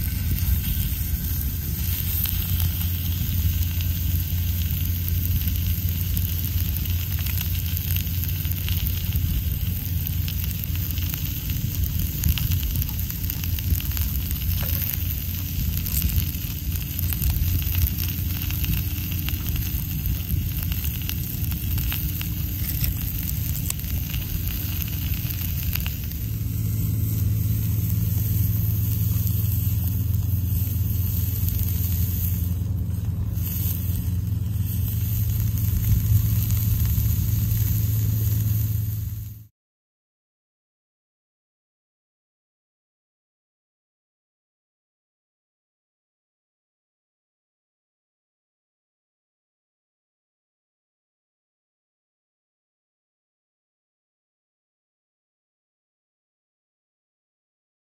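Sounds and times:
fire crackling: 0:00.0 - 0:39.5
low rumble: 0:00.0 - 0:39.5
steak sizzling on griddle: 0:00.0 - 0:39.5.

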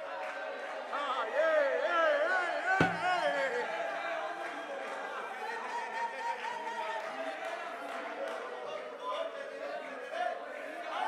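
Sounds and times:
congregation voices in praise: 0:00.0 - 0:11.0
thump: 0:02.8 - 0:03.2.

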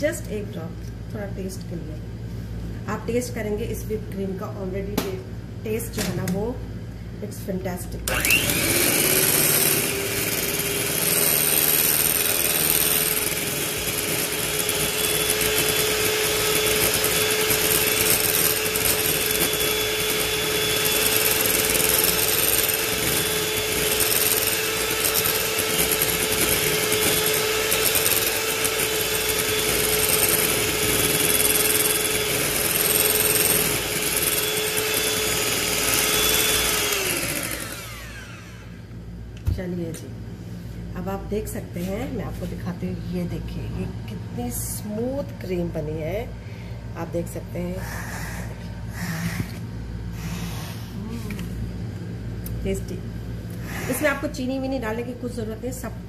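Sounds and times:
electric hand mixer whipping cream: 0:08.1 - 0:38.9.

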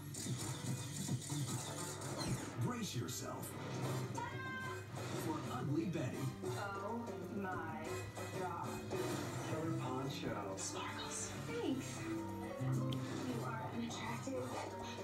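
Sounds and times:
trailer music: 0:00.2 - 0:15.0.

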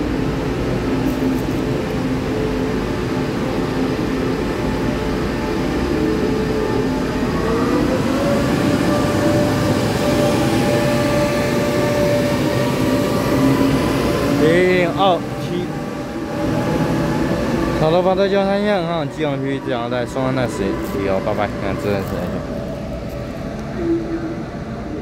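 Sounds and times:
train rail rumble: 0:00.0 - 0:25.0
train motor whine: 0:00.8 - 0:24.2.

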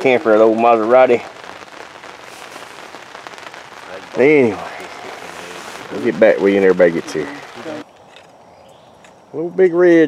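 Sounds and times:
rain falling: 0:00.0 - 0:07.9
raindrops ticking: 0:00.0 - 0:09.8.

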